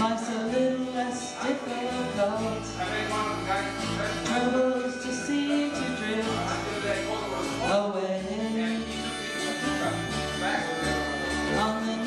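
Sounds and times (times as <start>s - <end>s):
woman singing: 0.0s - 2.7s, 11.5s - 12.0s
acoustic bass guitar: 0.0s - 12.0s
twelve-string acoustic guitar: 0.0s - 12.0s.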